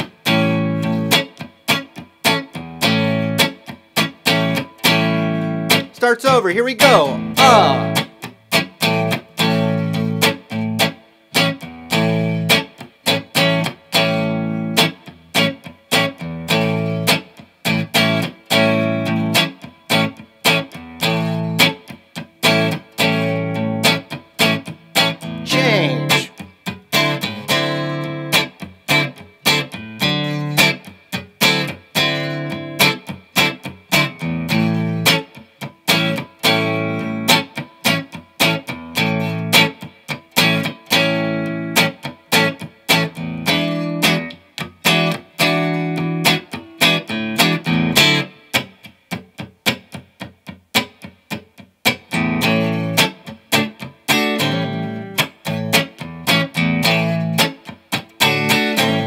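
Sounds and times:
electric guitar chord stabs: 2.8s - 17.2s, 22.4s - 35.2s.

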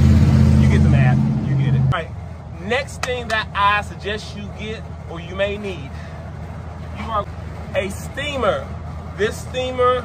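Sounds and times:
vehicle engine droning: 0.0s - 10.0s.

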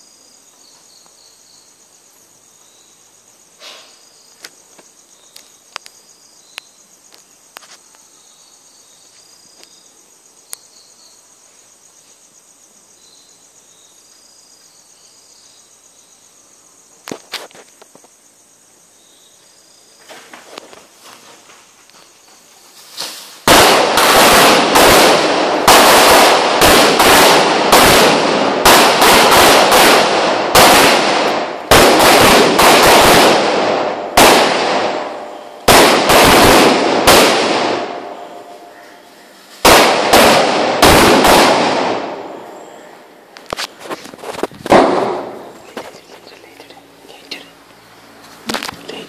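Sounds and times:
firecrackers crackling bangs: 22.9s - 38.2s, 39.5s - 42.6s, 43.6s - 46.2s.

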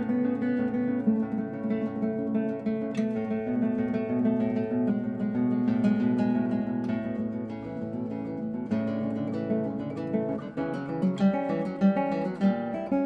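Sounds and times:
acoustic guitar music: 0.0s - 13.0s.

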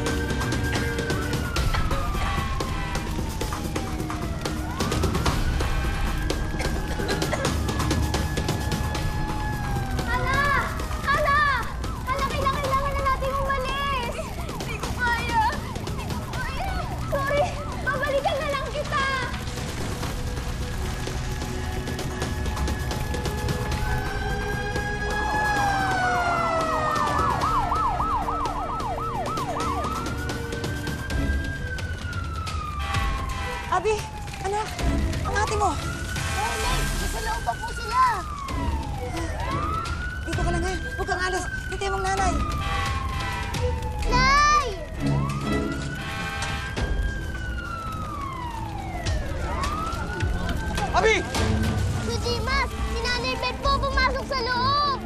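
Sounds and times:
emergency siren wailing: 0.0s - 55.0s
women screaming: 25.1s - 28.1s.

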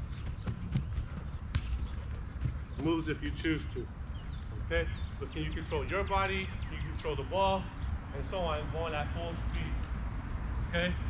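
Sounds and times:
feet tapping soccer ball: 0.0s - 3.7s.

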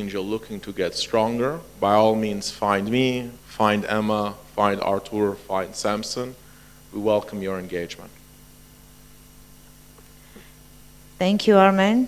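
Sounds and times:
electrical mains hum: 0.0s - 12.0s
faint hiss: 0.0s - 12.0s.

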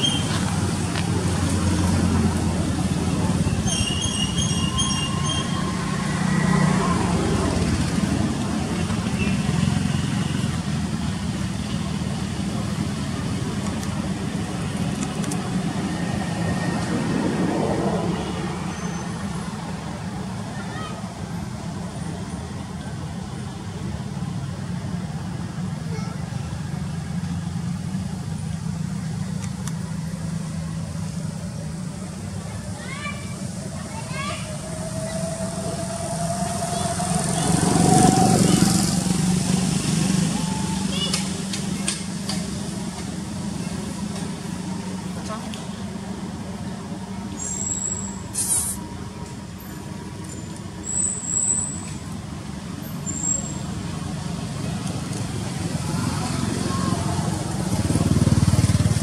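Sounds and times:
vehicle engine humming: 0.0s - 59.0s.

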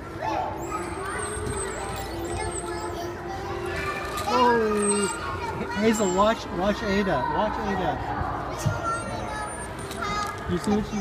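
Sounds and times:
children playing: 0.0s - 11.0s.

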